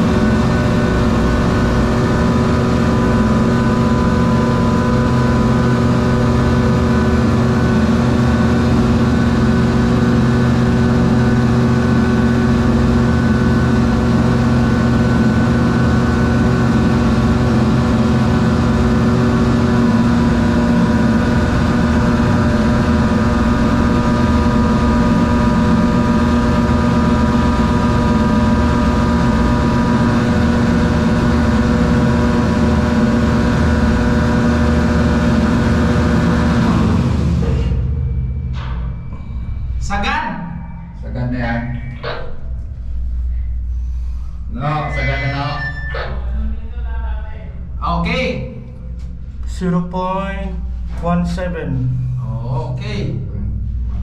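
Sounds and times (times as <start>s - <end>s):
hydraulic machinery hum: 0.0s - 54.0s.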